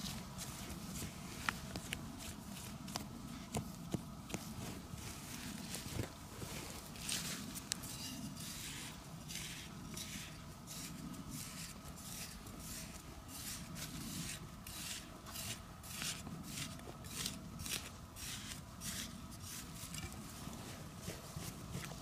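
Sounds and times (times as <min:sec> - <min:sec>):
trowel scraping dry soil: 0:04.3 - 0:22.0.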